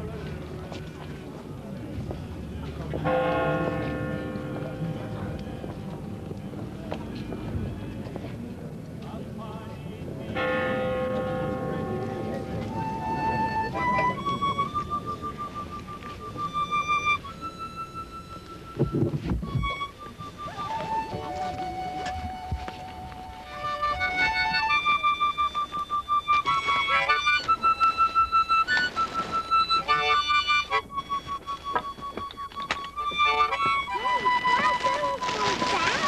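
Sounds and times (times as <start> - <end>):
murmur of crowd talking: 0.0 - 36.0
church bell ringing: 3.0 - 6.7, 10.4 - 12.8
low rumbling thuds: 18.8 - 19.8.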